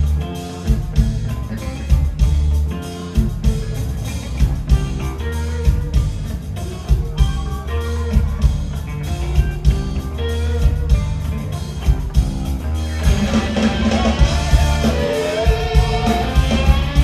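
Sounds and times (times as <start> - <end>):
bass guitar: 0.0 - 17.0
distorted electric guitar: 0.0 - 17.0
drum kit: 0.0 - 17.0.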